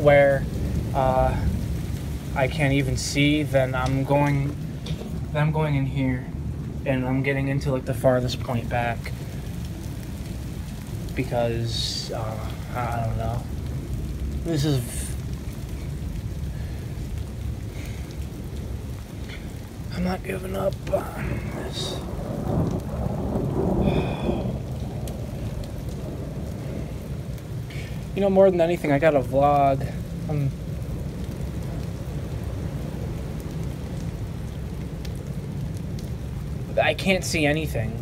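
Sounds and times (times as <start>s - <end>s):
low rumble: 0.0s - 36.9s
rain falling: 0.0s - 38.0s.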